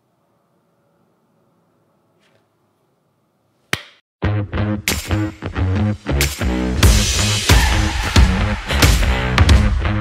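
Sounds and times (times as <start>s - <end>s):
faint room tone: 0.0s - 3.7s
hand clap: 3.7s - 4.0s, 4.9s - 5.2s.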